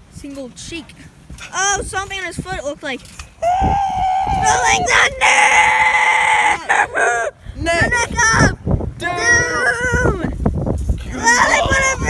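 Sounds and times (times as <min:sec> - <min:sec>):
person's high-pitched held cry: 0:03.4 - 0:07.4.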